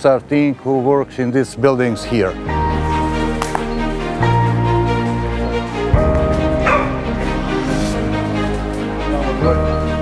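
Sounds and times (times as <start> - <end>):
background music held tones: 0.0 - 10.0
dog barking: 6.6 - 7.2.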